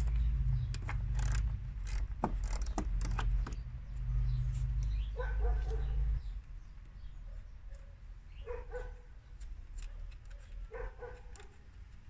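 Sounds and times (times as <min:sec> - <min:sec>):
metallic clicks and rattles: 0:00.0 - 0:03.7.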